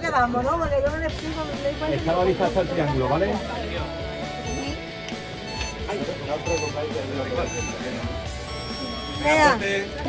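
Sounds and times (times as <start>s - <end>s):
background music: 0.0s - 10.0s
voices: 0.0s - 10.0s
short high electronic beeps: 4.5s - 4.8s, 5.5s - 5.8s, 6.4s - 6.8s, 7.4s - 9.6s.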